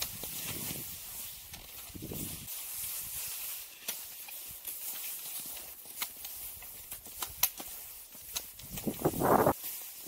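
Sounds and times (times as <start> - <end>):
ski poles crunching in snow: 0.0 - 10.0
skis hissing on snow: 0.1 - 10.0.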